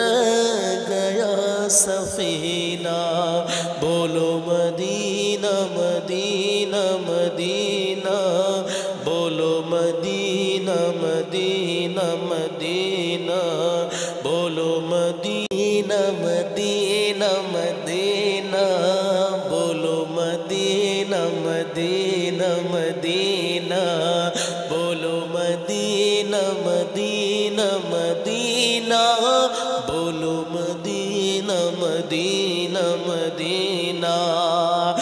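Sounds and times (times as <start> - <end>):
man singing into microphone: 0.0 - 35.0.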